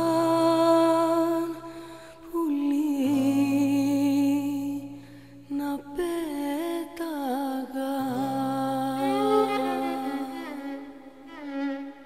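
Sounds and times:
woman singing long note: 5.5s - 11.2s.

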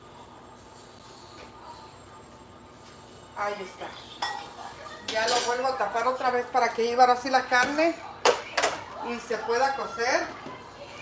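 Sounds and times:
dishes and utensils clinking: 4.2s - 5.9s.

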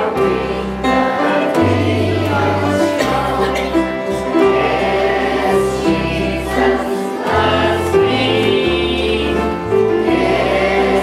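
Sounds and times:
children singing together: 0.0s - 11.0s
musical accompaniment with bass notes: 0.0s - 11.0s.

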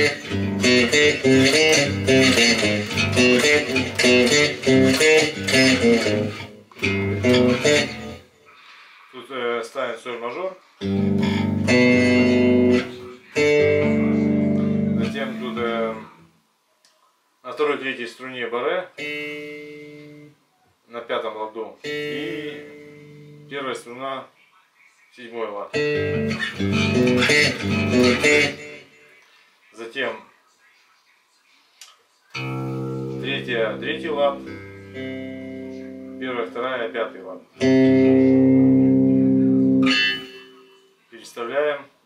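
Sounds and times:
electric bass chord: 0.0s - 8.2s, 10.8s - 15.7s, 32.4s - 36.3s
bright string noise: 32.4s - 36.4s, 39.8s - 41.0s.

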